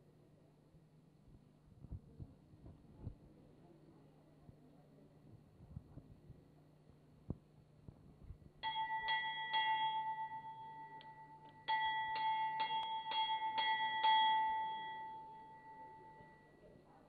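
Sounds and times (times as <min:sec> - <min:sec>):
metal temple bell strokes: 0:08.6 - 0:16.7.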